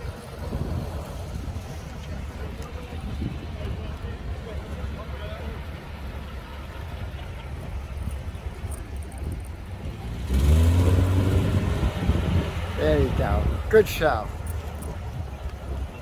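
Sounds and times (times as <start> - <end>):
low engine rumble: 0.0 - 16.0.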